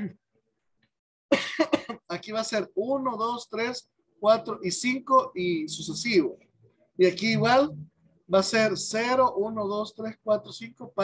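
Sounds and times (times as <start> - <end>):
person coughing: 1.3 - 2.1.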